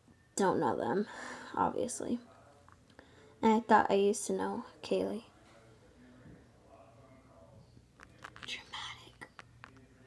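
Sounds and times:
person whispering: 0:08.1 - 0:09.8.

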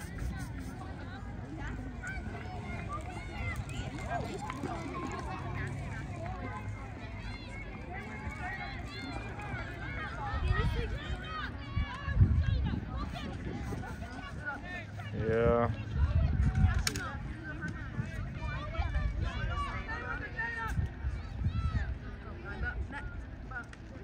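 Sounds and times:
indistinct chatter of voices: 0:00.0 - 0:24.0
people talking at once: 0:00.0 - 0:24.0
wind rumble on microphone: 0:00.0 - 0:24.0.

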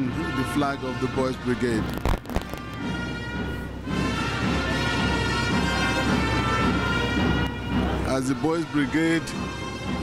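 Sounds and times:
marching band playing: 0:00.0 - 0:10.0.

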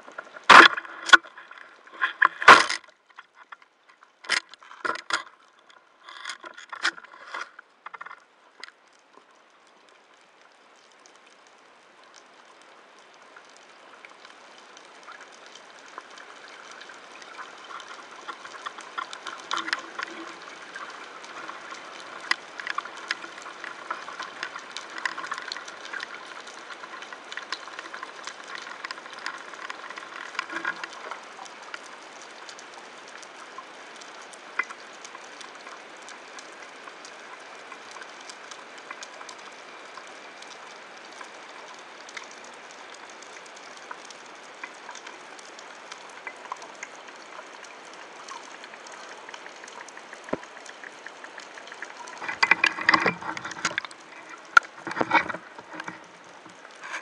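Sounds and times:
sharp underwater clicks and crackles: 0:00.0 - 0:57.0.

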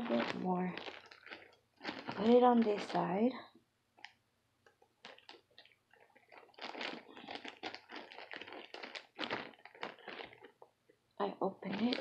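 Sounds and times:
plastic bag crinkling: 0:00.0 - 0:03.4, 0:04.0 - 0:10.7, 0:11.4 - 0:12.0.

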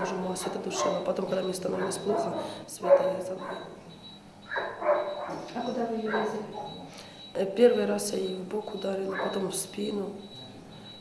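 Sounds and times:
woman speaking haltingly: 0:00.0 - 0:03.9, 0:05.5 - 0:06.8, 0:07.4 - 0:10.2.

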